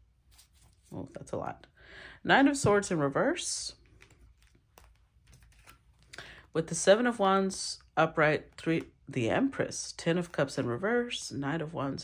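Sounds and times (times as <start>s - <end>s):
cards clicking and tapping: 3.8s - 6.4s.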